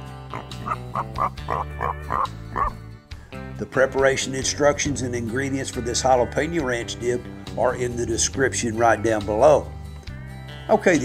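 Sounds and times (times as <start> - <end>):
sustained background music: 0.0 - 11.0
short yappy animal-like calls: 0.3 - 2.8.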